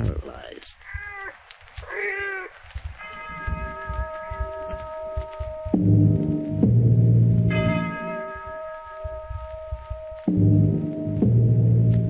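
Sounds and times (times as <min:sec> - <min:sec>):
cat meowing: 0:00.8 - 0:05.8
held musical note: 0:03.4 - 0:11.8.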